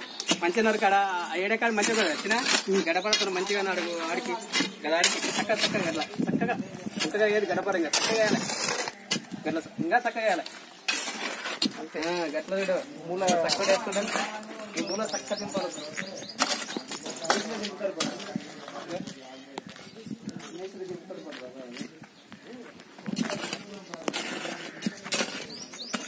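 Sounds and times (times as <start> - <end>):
hoe scraping stony soil: 0.0 - 20.7, 23.0 - 26.0
rasping scrapes: 7.9 - 9.4, 10.9 - 12.3, 23.0 - 26.0.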